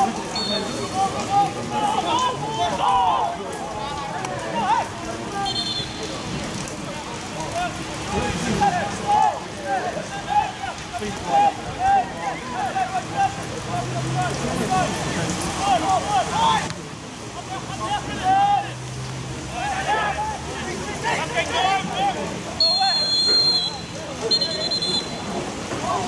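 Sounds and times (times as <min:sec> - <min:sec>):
steady rain falling: 0:00.0 - 0:26.0
distant shouts and calls: 0:08.6 - 0:26.0.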